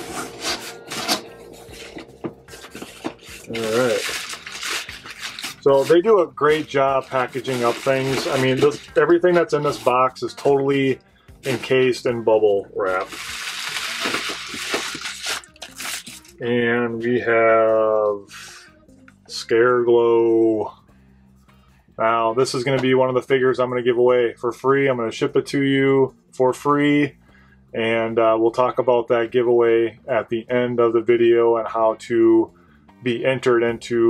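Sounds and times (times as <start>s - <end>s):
bubble wrap crinkling: 0.0s - 9.9s, 12.9s - 16.4s
cardboard scraping and rustling: 0.0s - 10.0s, 12.9s - 16.0s.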